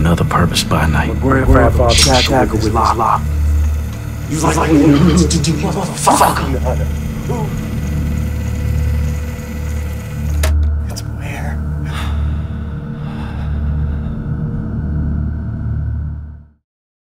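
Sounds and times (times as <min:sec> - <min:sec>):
pulsing bass drone: 0:00.0 - 0:16.6
sharp hit: 0:01.3 - 0:05.4.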